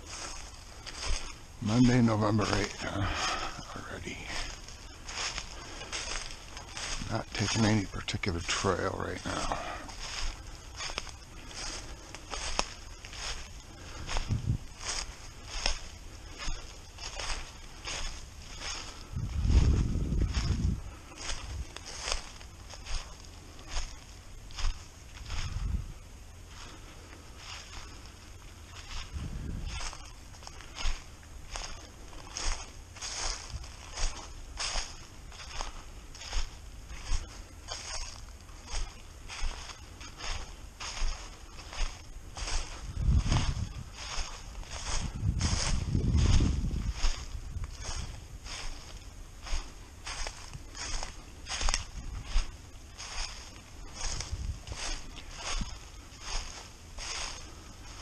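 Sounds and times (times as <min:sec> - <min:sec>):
footsteps crunching dry leaves: 0:00.0 - 0:58.0.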